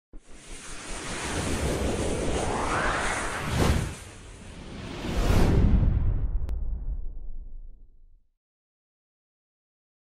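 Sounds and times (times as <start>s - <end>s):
whoosh sound effect: 0.3s - 6.5s
low rumble: 1.7s - 8.2s.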